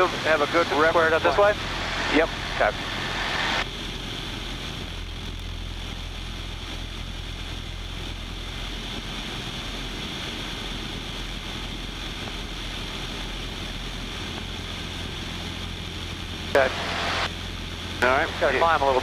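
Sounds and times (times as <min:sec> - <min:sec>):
light aircraft engine drone: 0:00.0 - 0:19.0
wind rushing: 0:01.4 - 0:05.0.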